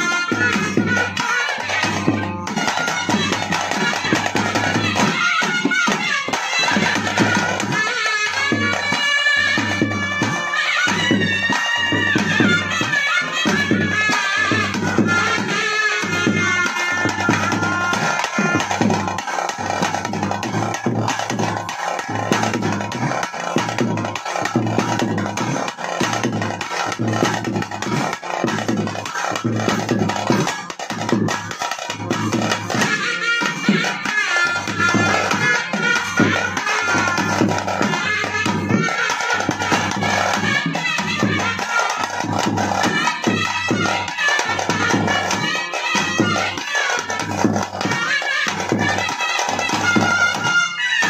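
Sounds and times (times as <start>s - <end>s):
drums beating: 0.0s - 51.0s.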